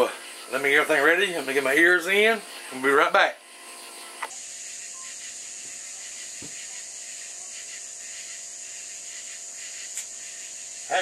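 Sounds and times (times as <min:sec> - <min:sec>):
high-pitched hiss: 0:00.0 - 0:11.0.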